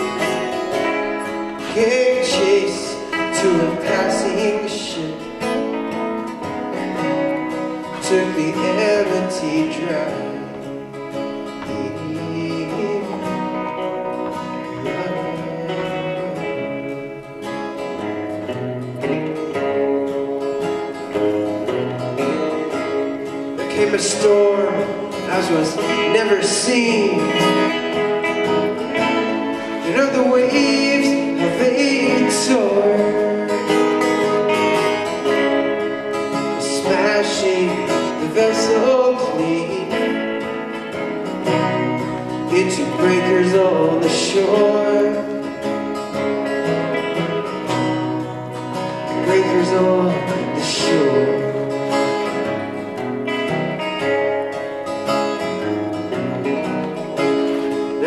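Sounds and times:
acoustic guitar strumming: 0.0s - 58.0s
electric guitar lead: 0.0s - 58.0s.

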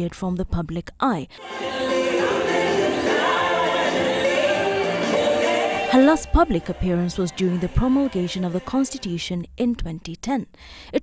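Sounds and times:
choir singing: 1.4s - 8.9s.

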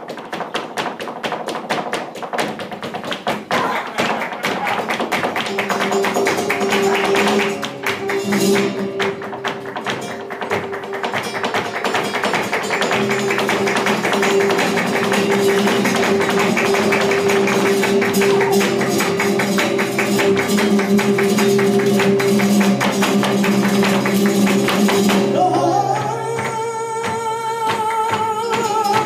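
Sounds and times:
dancer's footwork strikes: 0.0s - 29.0s
flamenco guitars: 0.0s - 29.0s
hand-clapping: 0.0s - 29.0s.

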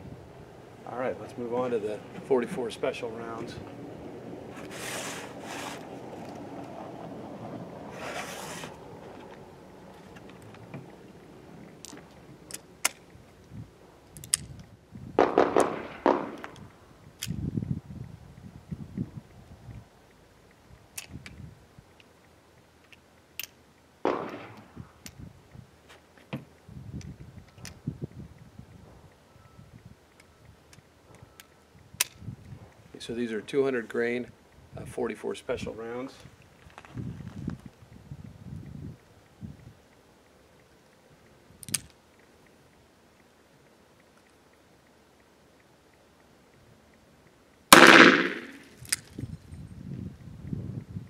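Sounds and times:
scrapes on a table: 4.6s - 5.8s, 7.9s - 8.8s
metallic clicks of gun parts: 11.7s - 14.8s, 20.5s - 25.2s, 30.1s - 32.8s, 41.6s - 42.3s, 47.6s - 49.6s.

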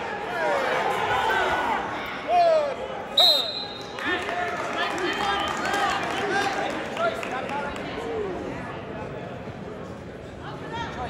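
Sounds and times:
high whistle blast: 3.2s - 3.9s.

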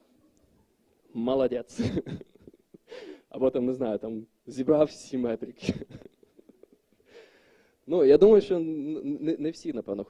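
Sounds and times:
man speaking into a microphone: 1.1s - 2.1s, 3.3s - 6.1s, 7.8s - 10.0s.

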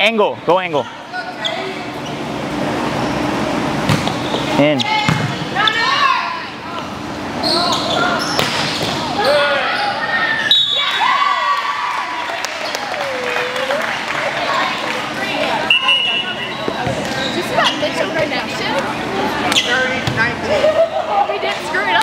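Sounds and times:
ball hits: 5.0s - 5.4s
players shouting and cheering: 9.0s - 22.0s.

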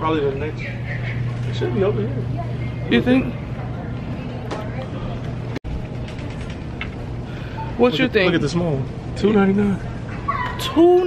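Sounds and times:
low shop hum: 0.0s - 11.0s.

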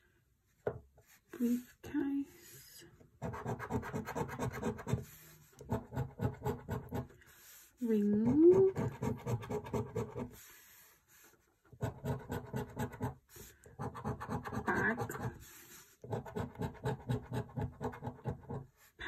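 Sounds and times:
coin scratching scratch card: 3.2s - 5.0s, 8.3s - 10.4s, 13.8s - 15.4s, 16.1s - 18.6s.

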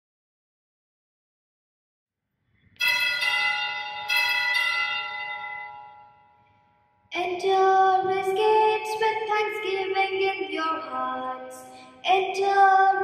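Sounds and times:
bell ringing: 2.8s - 7.0s.

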